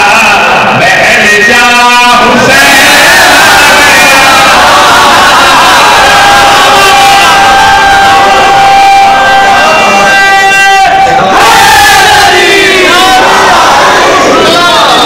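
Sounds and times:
crowd of men shouting: 1.6s - 15.0s.

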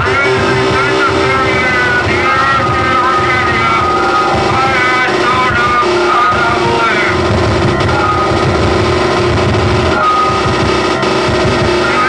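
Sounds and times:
electronic noise drone: 0.0s - 12.0s
warbling gliding tones: 0.0s - 12.0s.

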